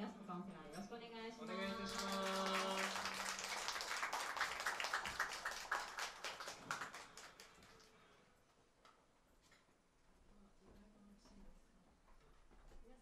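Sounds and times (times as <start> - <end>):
small audience clapping: 1.6 - 8.1.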